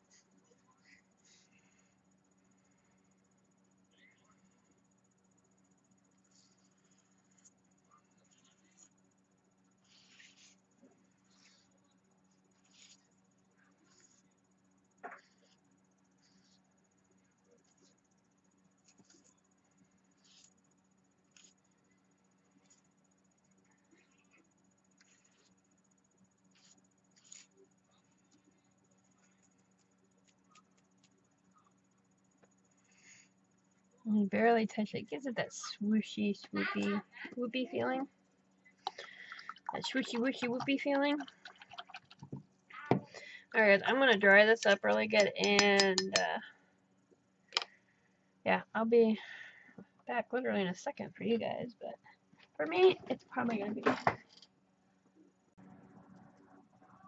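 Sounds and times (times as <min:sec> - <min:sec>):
faint steady hum: 0:00.0 - 0:57.0
brush scratching paper: 0:08.2 - 0:09.0, 0:09.8 - 0:14.3, 0:20.1 - 0:20.6, 0:21.3 - 0:21.6, 0:25.0 - 0:25.6, 0:26.5 - 0:28.4.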